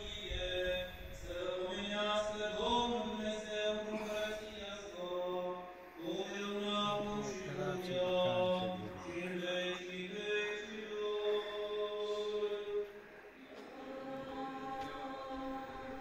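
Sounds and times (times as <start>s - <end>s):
voices chanting slow melody: 0.0s - 16.0s.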